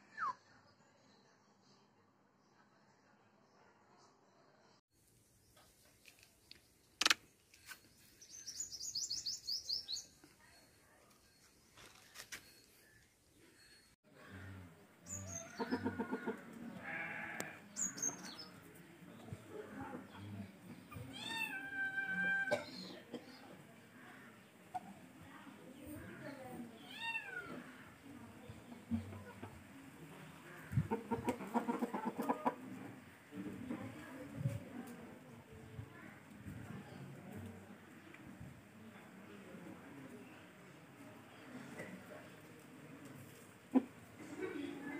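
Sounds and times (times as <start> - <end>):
bird chirping: 7.8 - 13.9
chickens clucking: 14.6 - 16.8, 28.3 - 33.7, 43.0 - 44.5.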